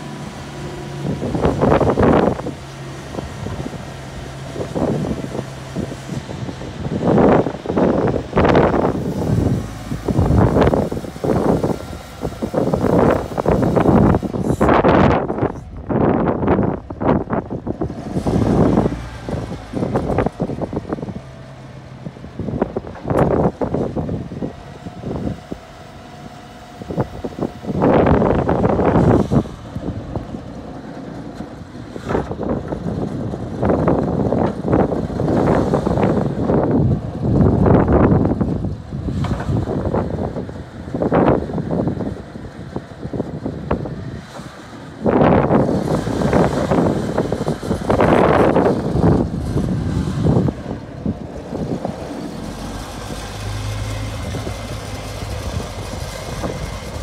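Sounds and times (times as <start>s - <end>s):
forklift engine surging: 0.0s - 57.0s.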